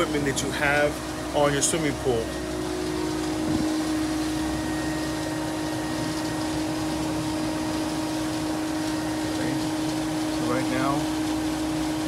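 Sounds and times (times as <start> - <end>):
pool pump humming with whine: 0.0 - 12.0.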